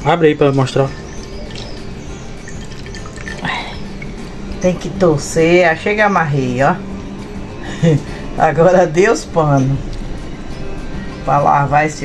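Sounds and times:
faint high chirps: 0.0 - 5.0
liquid dripping into glass bowl: 0.9 - 4.9.

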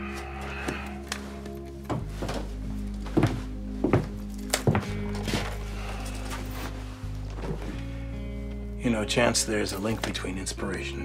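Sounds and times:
background music with held tones: 0.0 - 11.0
heavy footsteps: 0.1 - 8.7.

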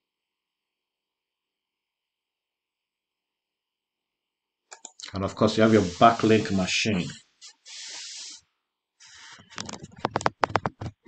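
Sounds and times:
breath into microphone: 7.4 - 8.4.

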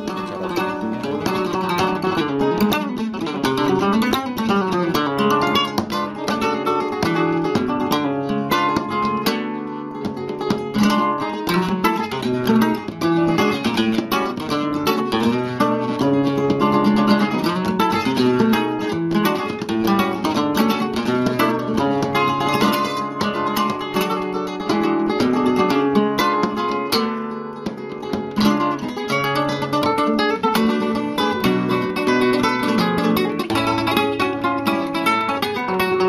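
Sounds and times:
plucked acoustic guitar music: 0.0 - 36.0.

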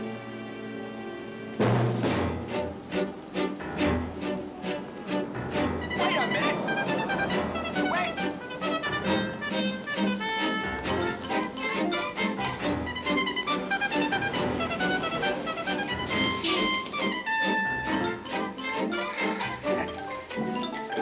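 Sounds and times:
orchestral music led by brass: 0.0 - 21.0.

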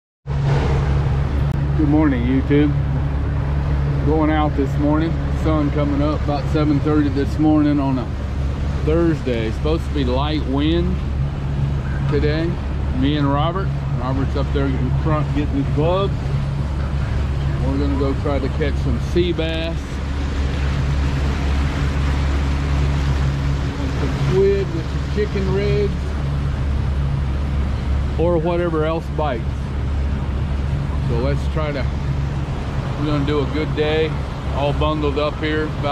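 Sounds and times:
boat engine running: 0.2 - 35.9
wind: 0.2 - 35.9
water rushing: 0.3 - 35.9.

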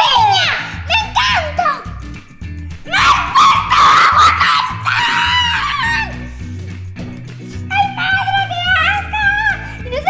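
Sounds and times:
background music with steady beat: 0.0 - 10.0
girl shrieking: 2.9 - 6.1.

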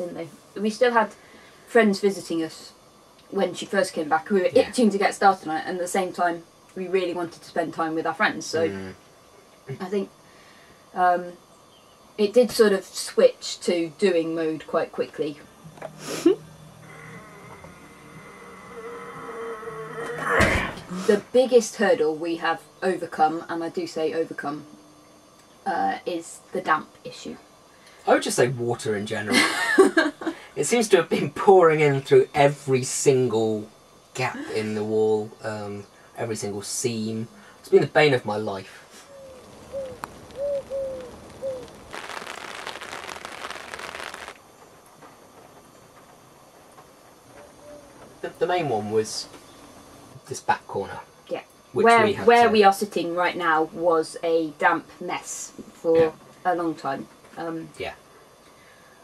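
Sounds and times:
heavy rain hiss: 0.0 - 11.4, 12.2 - 24.6, 25.7 - 47.2, 48.1 - 59.0
thin high whine: 13.9 - 27.4, 28.1 - 44.4
buzzing drone: 15.1 - 25.3, 39.2 - 44.4.

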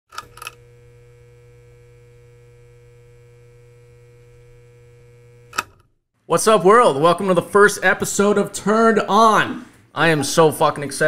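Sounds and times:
steady electrical hum: 0.3 - 5.7.

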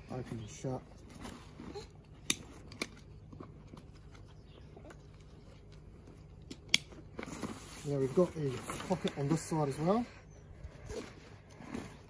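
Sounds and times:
fabric and straps rustling: 7.0 - 10.1, 10.7 - 12.0.

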